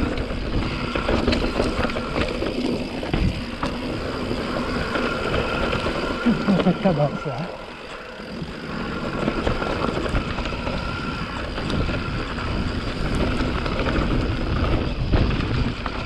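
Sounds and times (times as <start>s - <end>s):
bike clattering over bumps: 0.0s - 7.0s, 7.6s - 16.0s
bike tyres rumbling over dirt: 0.0s - 16.0s.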